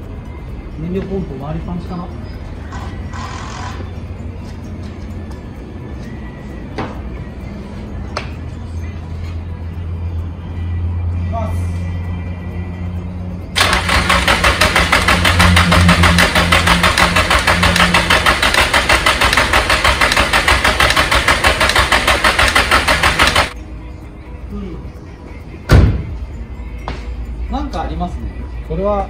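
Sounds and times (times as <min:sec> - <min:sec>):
engine cranking on starter: 0:13.6 - 0:23.6.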